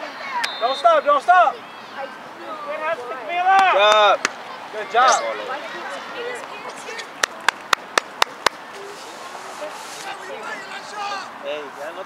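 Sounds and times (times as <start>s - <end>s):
quick hand claps: 7.2s - 8.6s.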